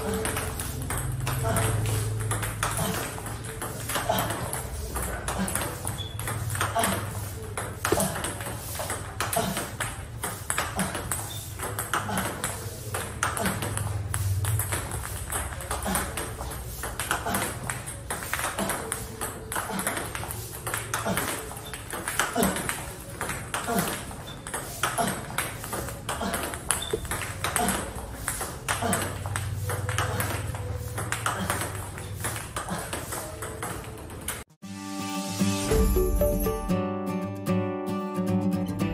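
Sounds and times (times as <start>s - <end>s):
ball bouncing on table: 0.0s - 34.4s
table tennis ball hits: 0.0s - 34.4s.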